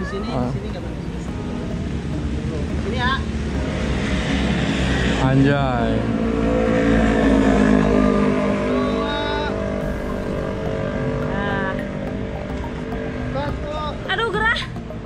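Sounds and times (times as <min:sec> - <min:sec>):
vehicle engine droning: 0:00.0 - 0:15.0.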